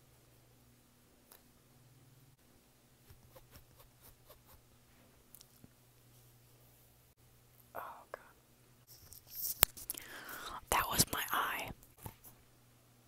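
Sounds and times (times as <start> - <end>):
person whispering: 7.7 - 8.4, 9.9 - 11.8.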